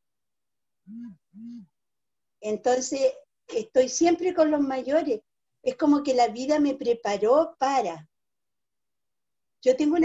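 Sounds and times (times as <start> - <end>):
woman humming mm-hm: 0.9 - 1.8.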